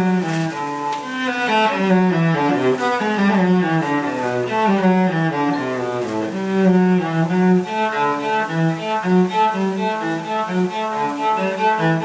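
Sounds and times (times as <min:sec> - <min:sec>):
bowed cello notes: 0:00.0 - 0:12.0.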